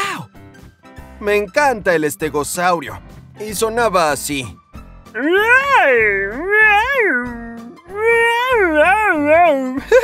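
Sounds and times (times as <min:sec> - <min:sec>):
man imitating animal calls: 0:05.2 - 0:09.8.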